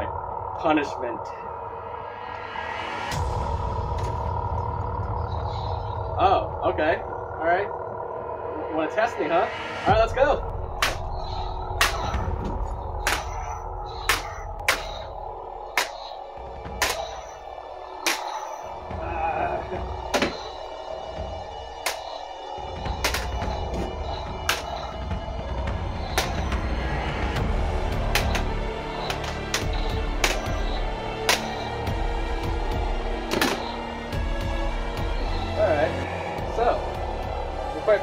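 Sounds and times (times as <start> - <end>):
background music: 0.0 - 38.0.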